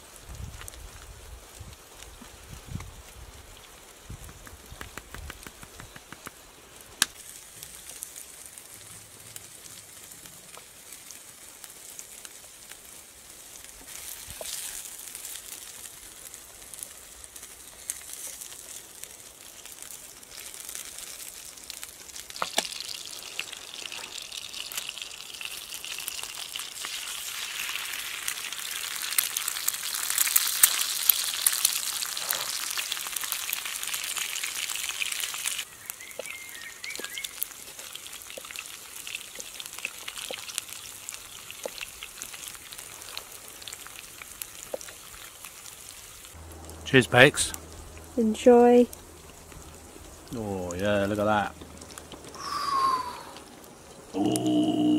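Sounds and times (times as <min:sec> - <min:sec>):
food sizzling in a skillet: 0:05.4 - 0:54.9.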